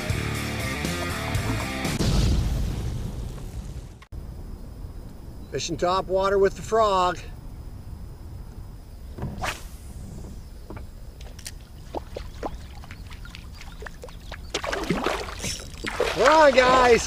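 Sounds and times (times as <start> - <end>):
wind: 1.5 - 17.0
water noise: 9.3 - 17.0.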